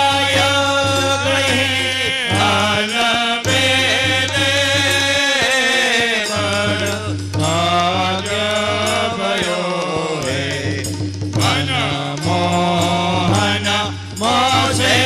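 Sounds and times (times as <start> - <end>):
harmonium: 0.0 - 15.0
men's group chanting: 0.0 - 15.0
tabla: 0.0 - 15.0.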